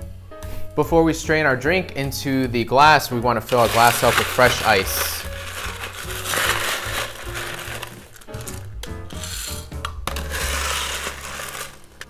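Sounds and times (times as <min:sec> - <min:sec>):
background music: 0:00.0 - 0:12.0
crushed ice poured into a glass: 0:03.5 - 0:08.6, 0:10.1 - 0:12.0.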